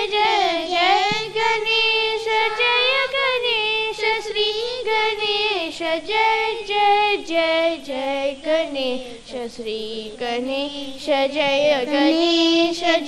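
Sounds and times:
child singing into microphone: 0:00.0 - 0:13.0.

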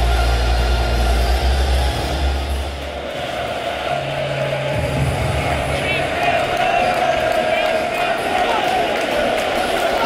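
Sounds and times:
football crowd din: 0:00.0 - 0:10.0
music over stadium speakers: 0:00.0 - 0:10.0.

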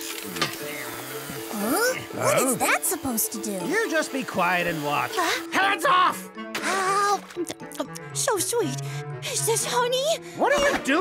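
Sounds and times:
hissing grinding metalwork effect: 0:00.0 - 0:05.5
background music: 0:00.0 - 0:11.0.

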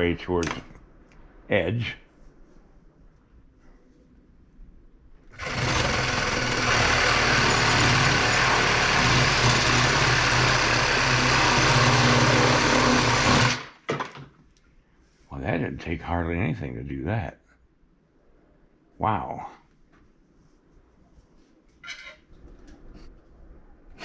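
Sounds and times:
reciprocating saw cutting wood: 0:05.4 - 0:13.7.

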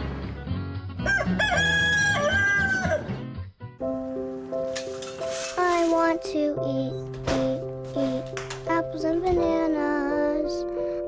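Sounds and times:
background music: 0:00.0 - 0:11.0
rooster crowing: 0:01.0 - 0:03.2.

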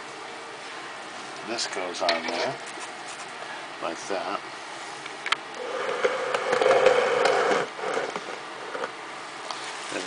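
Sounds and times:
small motor whirring: 0:05.5 - 0:08.9.

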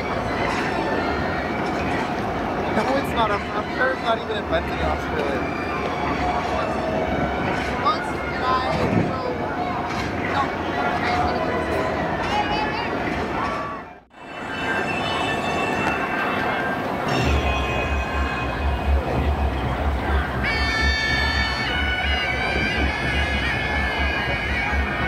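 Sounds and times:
reedy wind instrument: 0:00.0 - 0:25.0
low pulsing beat: 0:16.9 - 0:25.0.

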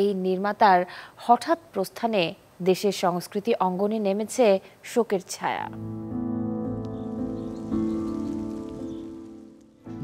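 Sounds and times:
sustained chords music: 0:05.8 - 0:10.0.

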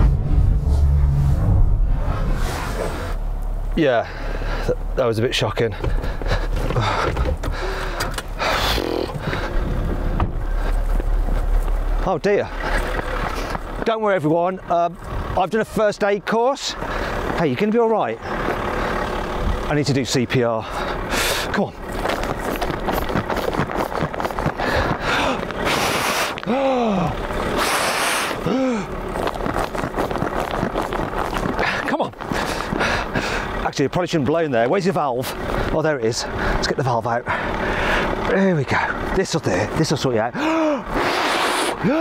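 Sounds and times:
brief rushing noise: 0:00.0 - 0:03.4
car engine low rumble: 0:00.0 - 0:42.0
sigh: 0:26.5 - 0:27.2, 0:28.4 - 0:28.9, 0:40.4 - 0:40.9.

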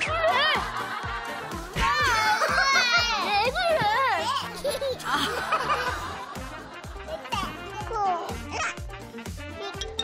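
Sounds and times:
light background music: 0:00.0 - 0:10.0
toddlers vocalizing and laughing: 0:00.0 - 0:10.0.

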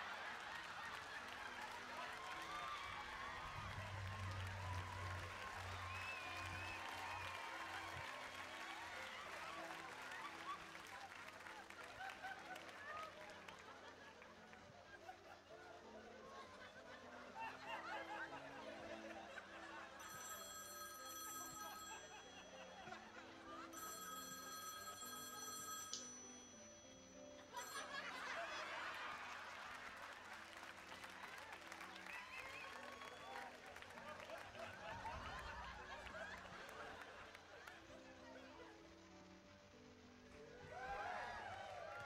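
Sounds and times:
studio audience applauding: 0:00.0 - 0:14.8, 0:27.7 - 0:38.0, 0:40.6 - 0:42.0
soft music: 0:00.0 - 0:42.0
telephone ringing: 0:19.9 - 0:28.4.

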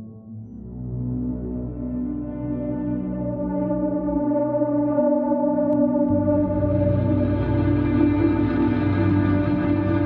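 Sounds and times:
ambient electronic drone music: 0:00.0 - 0:10.0.

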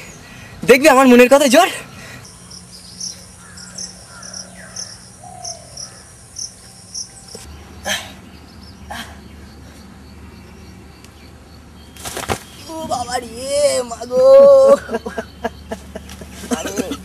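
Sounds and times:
insects chirping: 0:00.0 - 0:17.0
brief rustles: 0:12.0 - 0:12.6.

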